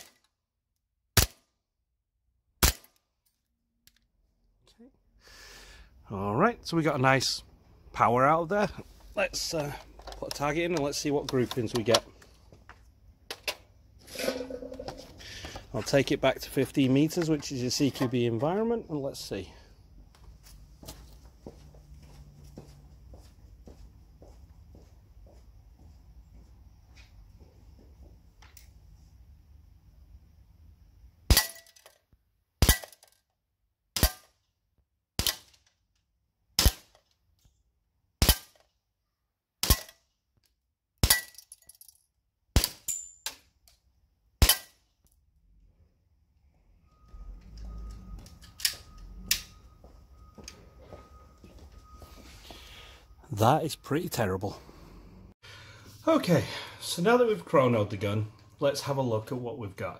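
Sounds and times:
airsoft pistol shots: 0:01.2 - 0:01.5, 0:02.6 - 0:03.0, 0:32.6 - 0:33.0, 0:34.0 - 0:34.3, 0:36.6 - 0:36.9, 0:38.2 - 0:38.6, 0:39.6 - 0:40.0, 0:42.6 - 0:42.9, 0:44.4 - 0:44.8.

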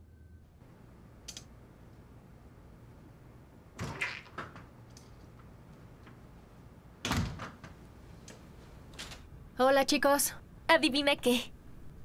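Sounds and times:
door shutting thud: 0:07.0 - 0:07.8.

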